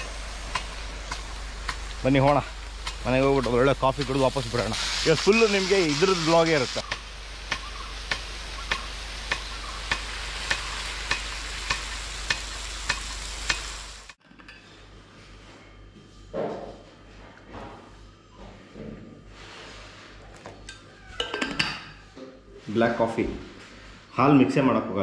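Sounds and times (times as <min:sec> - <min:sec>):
sprinkler arm clicking: 0:00.0 - 0:04.5, 0:05.2 - 0:14.2
sprinkler spraying water: 0:00.0 - 0:14.2.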